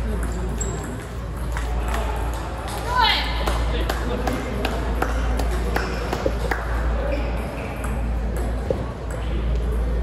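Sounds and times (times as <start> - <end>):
table tennis balls clicking: 0.0 - 2.8
large hall noise: 0.0 - 10.0.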